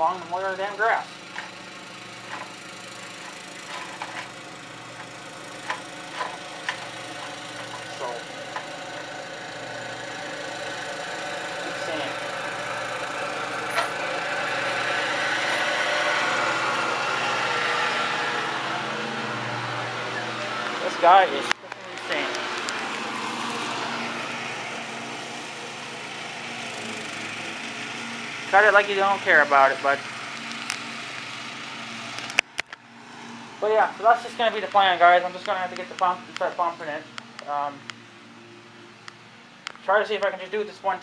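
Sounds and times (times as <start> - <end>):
distant engine: 0.0 - 41.0.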